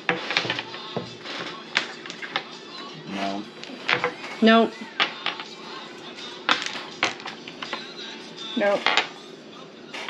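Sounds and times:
domino tiles clicking on wood: 0.1s - 2.5s.

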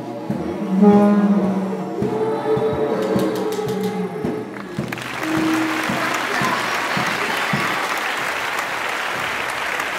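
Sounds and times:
didgeridoo toots: 0.3s - 6.2s
children clapping: 4.5s - 9.9s.

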